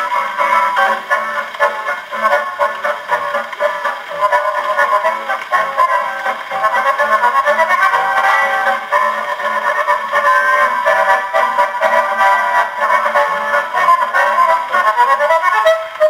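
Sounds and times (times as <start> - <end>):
gramophone dance tune: 0.0 - 16.0
record surface hiss: 0.0 - 16.0.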